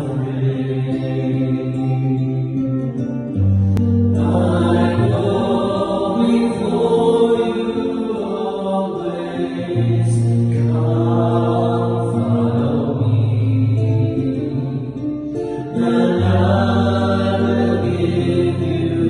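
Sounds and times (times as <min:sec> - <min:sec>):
mixed choir singing: 0:00.0 - 0:03.0, 0:04.0 - 0:19.0
acoustic guitar: 0:00.0 - 0:19.0.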